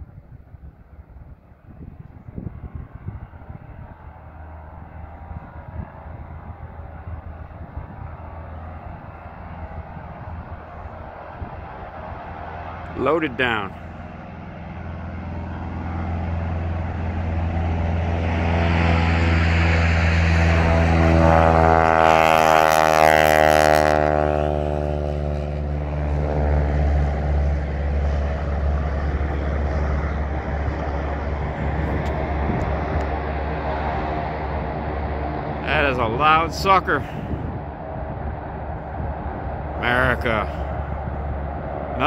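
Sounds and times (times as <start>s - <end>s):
biplane radial engine drone: 0.0s - 42.0s.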